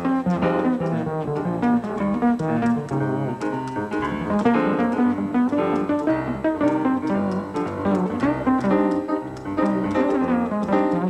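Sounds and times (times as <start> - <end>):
double bass plucked: 0.0 - 11.0
piano: 0.0 - 11.0.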